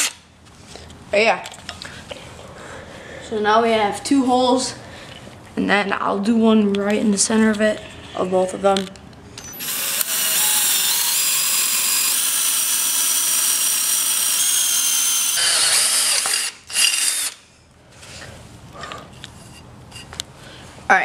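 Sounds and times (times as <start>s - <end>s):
cordless drill boring through metal: 9.5s - 17.4s.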